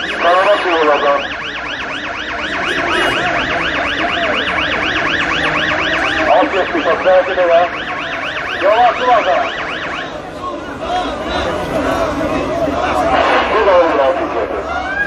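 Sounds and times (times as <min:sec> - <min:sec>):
electronic siren yelping: 0:00.0 - 0:10.4, 0:14.0 - 0:15.0
crowd voices: 0:00.0 - 0:15.0.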